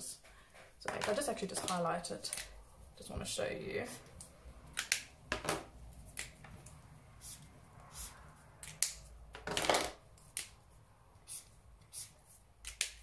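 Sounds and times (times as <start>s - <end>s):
highlighter stroke on paper: 7.2s - 8.5s, 10.6s - 12.5s
pen clicks and taps: 12.6s - 13.0s.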